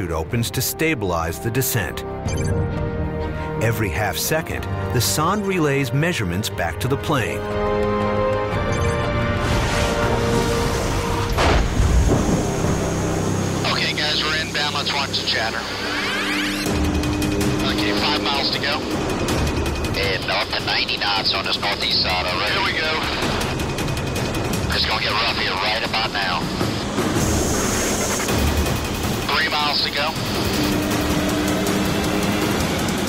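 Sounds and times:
engine and airflow roar: 0:07.4 - 0:33.0
low rumble: 0:09.3 - 0:15.8
aircraft cabin drone: 0:09.3 - 0:33.0.

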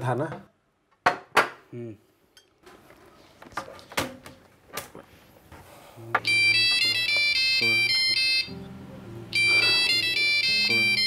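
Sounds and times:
phone ringtone: 0:06.2 - 0:08.7, 0:09.3 - 0:11.0.

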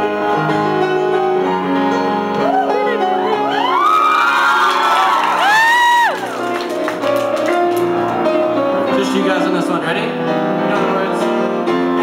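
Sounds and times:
grand piano playing: 0:00.0 - 0:12.0
high whooping voices: 0:02.4 - 0:06.6.

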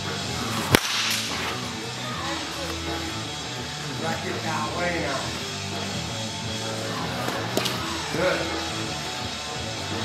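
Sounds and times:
background music: 0:00.0 - 0:10.0
bat swish: 0:00.4 - 0:01.7
baseball bat crack: 0:00.5 - 0:01.7.

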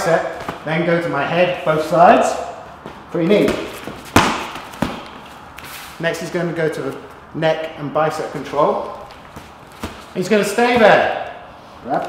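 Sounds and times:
knee strikes smacking a pad: 0:02.8 - 0:05.2, 0:09.4 - 0:10.1.

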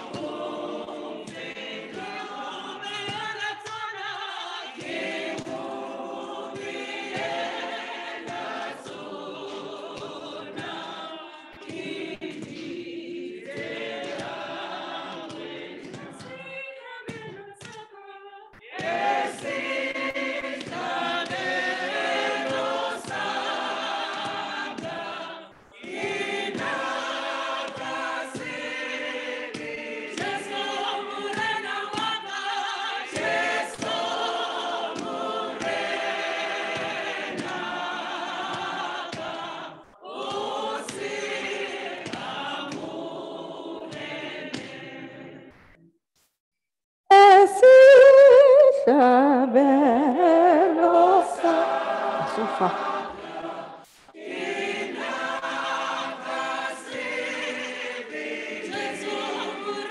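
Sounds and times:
choir singing a hymn: 0:00.0 - 0:45.7, 0:48.9 - 0:59.9
single wavering voice singing: 0:47.1 - 0:53.0.

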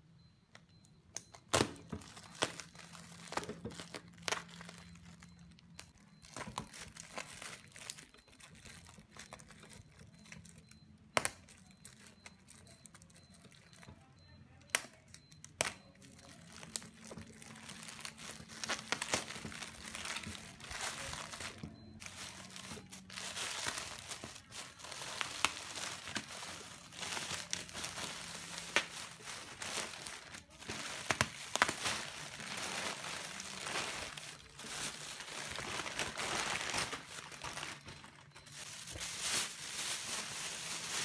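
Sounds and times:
sharp plastic crackles: 0:00.5 - 0:41.0
plastic bag crinkling and tearing: 0:01.4 - 0:10.6, 0:16.0 - 0:41.0.

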